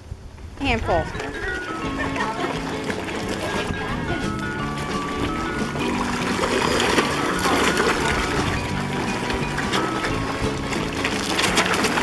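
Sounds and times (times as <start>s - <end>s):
background music: 0.8s - 12.0s
fish splashing at water surface: 1.6s - 12.0s.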